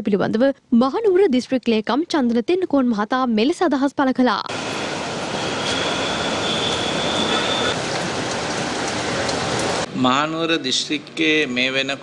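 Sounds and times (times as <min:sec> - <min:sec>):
outdoor background noise: 0:00.0 - 0:12.0
faint high whine: 0:04.5 - 0:07.8.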